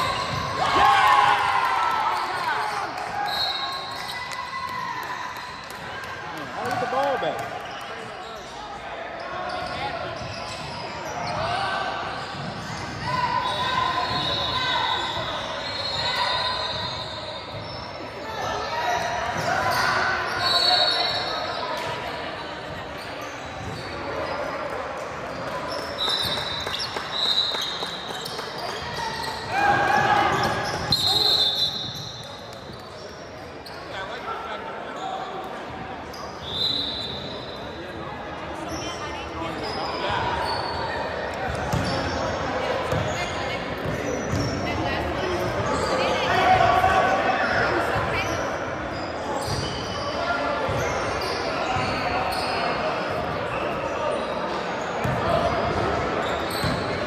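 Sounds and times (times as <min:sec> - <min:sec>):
sneakers squeaking: 0:00.0 - 0:00.8, 0:02.2 - 0:57.0.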